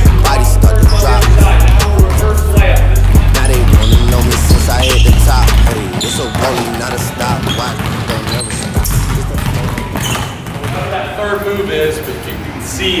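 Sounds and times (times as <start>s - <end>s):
heavy bass music: 0.0s - 5.9s, 8.8s - 9.9s
basketballs bouncing on hardwood: 0.0s - 11.7s
voices in a gym: 0.3s - 13.0s.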